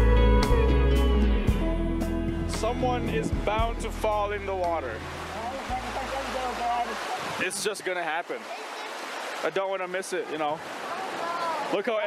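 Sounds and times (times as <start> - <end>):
background music: 0.0 - 6.9
creek water rushing over rocks: 2.6 - 12.0
people's voices: 2.6 - 12.0.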